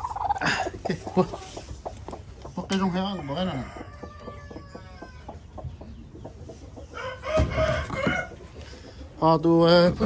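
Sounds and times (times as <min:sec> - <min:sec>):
chicken calling: 0:00.0 - 0:02.2.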